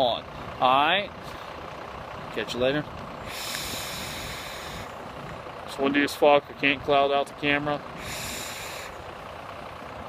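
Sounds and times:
bus engine idling: 0:00.0 - 0:10.0.

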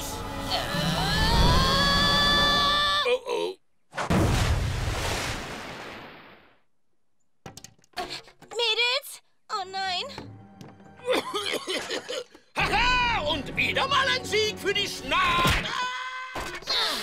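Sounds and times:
cartoon explosion blast: 0:04.0 - 0:06.2.

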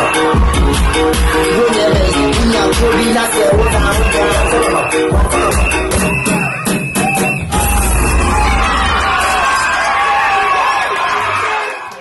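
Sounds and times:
audience cheering and whooping: 0:00.0 - 0:01.6, 0:03.4 - 0:12.0
dance music with a beat: 0:00.0 - 0:11.2.

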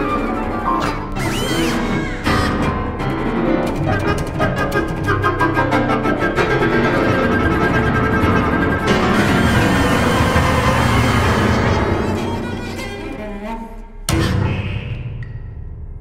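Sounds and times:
chamber ensemble playing: 0:00.0 - 0:13.6
cello: 0:00.0 - 0:15.0.

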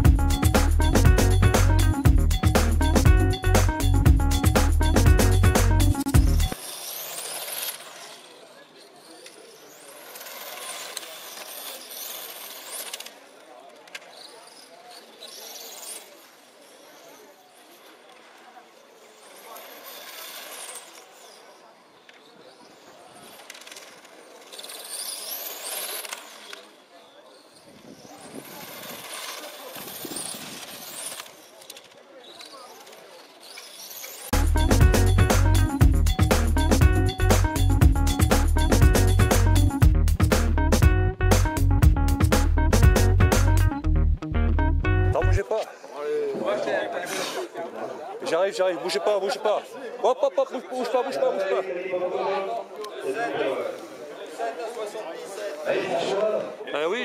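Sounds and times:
music track: 0:00.0 - 0:06.6, 0:34.3 - 0:45.5
rc car engines whining: 0:06.3 - 0:34.4.

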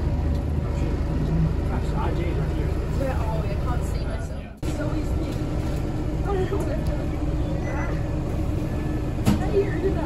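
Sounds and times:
bus engine low rumble: 0:00.0 - 0:10.0.

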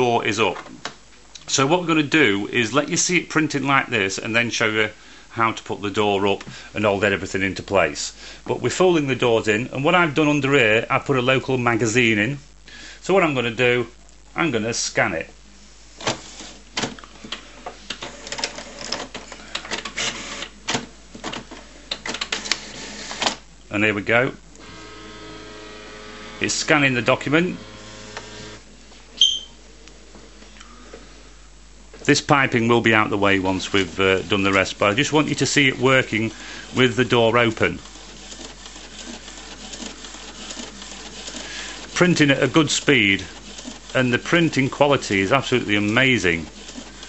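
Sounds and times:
inkjet printer printing: 0:16.0 - 0:23.4, 0:24.6 - 0:28.7, 0:33.0 - 0:47.0
print carriage rapid clicks: 0:17.9 - 0:23.4, 0:33.6 - 0:47.0.

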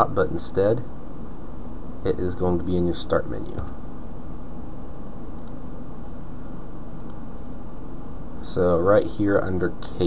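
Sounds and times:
low hum and hiss: 0:00.0 - 0:10.0
faint mouse clicks: 0:05.3 - 0:05.6, 0:07.0 - 0:07.2.

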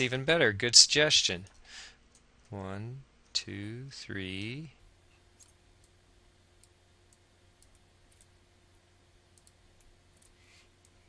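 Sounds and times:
low steady hum: 0:00.0 - 0:11.0
computer mouse clicks: 0:05.4 - 0:06.0, 0:06.6 - 0:08.3, 0:09.3 - 0:11.0.

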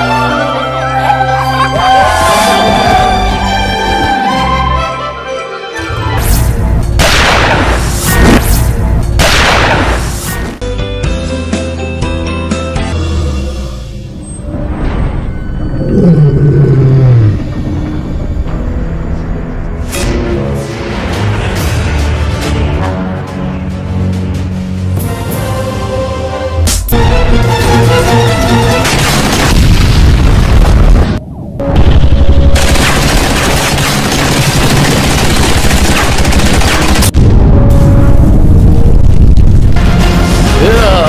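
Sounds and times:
heavy booming blasts: 0:06.8 - 0:10.2, 0:28.2 - 0:40.6
deep tone sliding downward: 0:13.0 - 0:19.6
low rumble: 0:13.1 - 0:22.6, 0:37.0 - 0:40.6
machine-gun fire: 0:28.8 - 0:30.1, 0:32.2 - 0:37.2.

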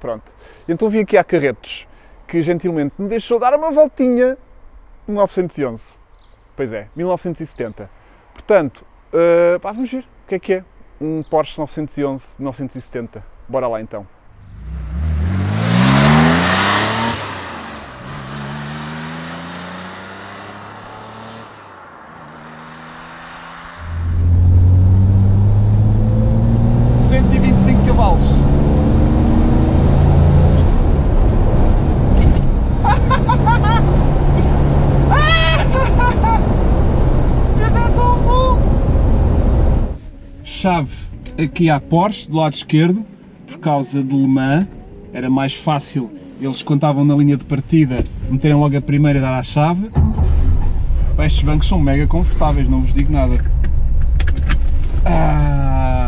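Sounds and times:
car engine accelerating through gears: 0:14.4 - 0:40.0
man laughing: 0:32.8 - 0:36.6, 0:37.6 - 0:38.6
loud rush: 0:50.0 - 0:56.0.

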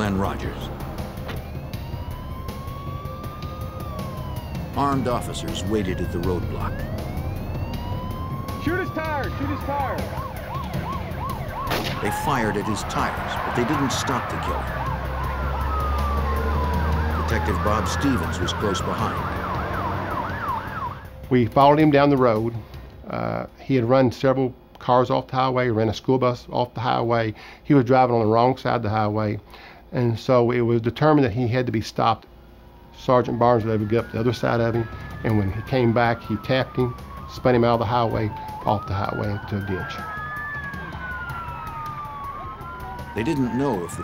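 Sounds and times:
police siren yelping: 0:00.0 - 0:22.0, 0:32.5 - 0:44.0
rumble of cars on road: 0:00.0 - 0:23.1, 0:32.2 - 0:44.0.

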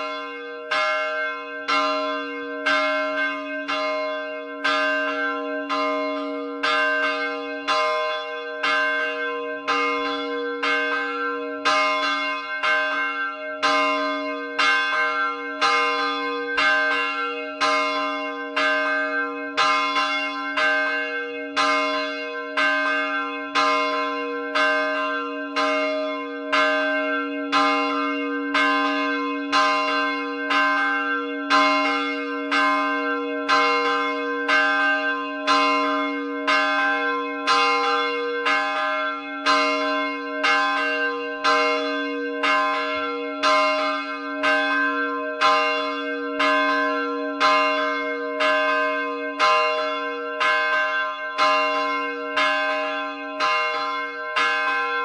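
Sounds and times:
church bell ringing: 0:00.0 - 0:55.0.

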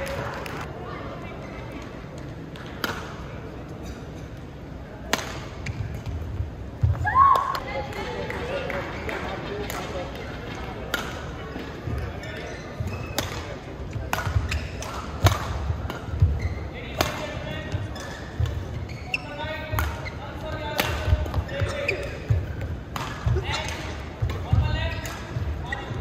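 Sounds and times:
rackets striking shuttlecock: 0:13.1 - 0:18.6, 0:19.7 - 0:21.4, 0:22.0 - 0:25.4.

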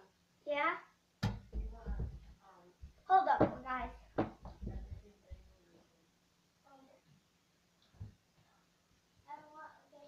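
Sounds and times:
low thudding: 0:01.2 - 0:05.5.

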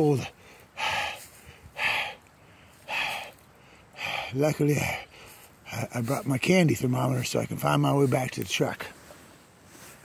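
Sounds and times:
man breathing hard: 0:00.0 - 0:05.7.

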